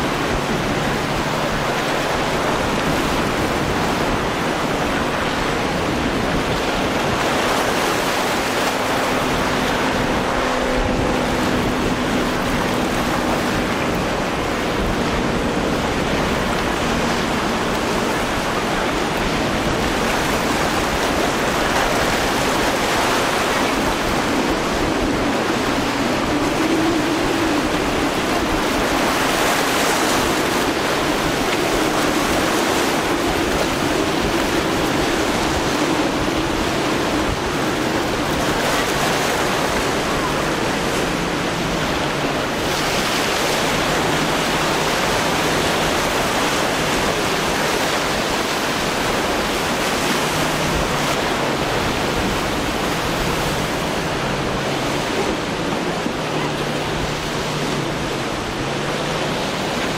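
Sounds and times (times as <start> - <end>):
outboard motor humming: 0.0 - 59.9
waves breaking and churning: 0.0 - 59.9
wind on microphone: 0.0 - 59.9.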